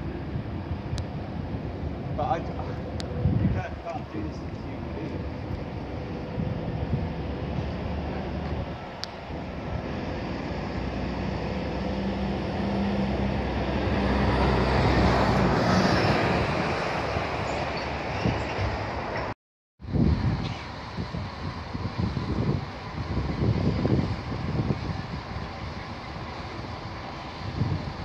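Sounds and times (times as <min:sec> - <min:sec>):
large engine rumbling: 0:00.0 - 0:19.2, 0:19.8 - 0:28.0.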